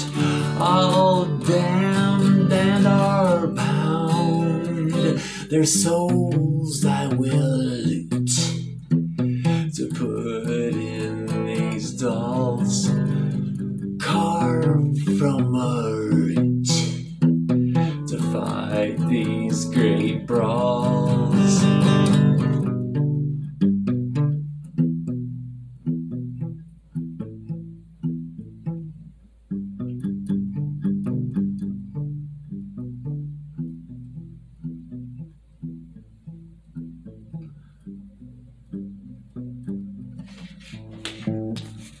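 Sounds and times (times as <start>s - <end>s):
plucked guitar notes: 0.0s - 42.0s.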